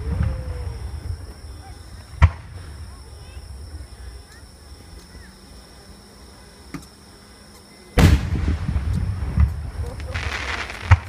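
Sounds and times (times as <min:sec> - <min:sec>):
low rumbling echo: 0:08.0 - 0:10.2
firework shell boom: 0:08.0 - 0:11.0.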